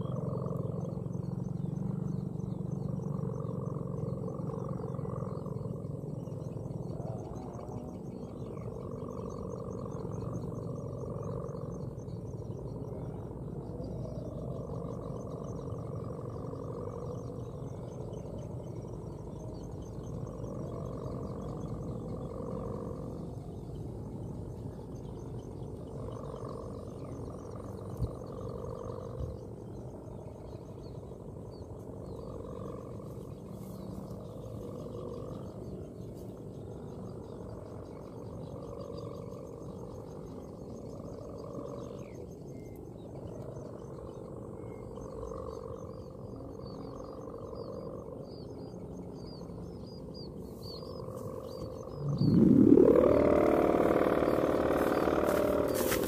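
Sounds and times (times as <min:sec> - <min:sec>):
kite hummer droning: 0:00.0 - 0:56.0
wind rumble on microphone: 0:00.0 - 0:56.0.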